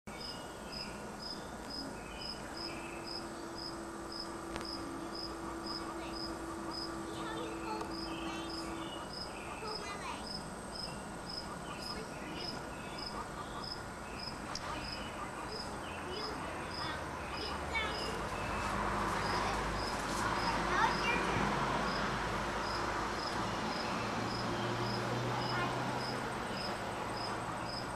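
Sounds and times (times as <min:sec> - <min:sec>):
low steady hum: 0:00.1 - 0:19.7
cricket chirping: 0:00.2 - 0:21.2, 0:21.9 - 0:27.9.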